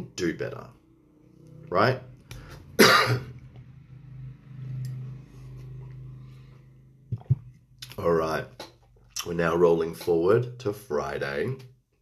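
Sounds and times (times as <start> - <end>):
man coughing: 2.8 - 3.3.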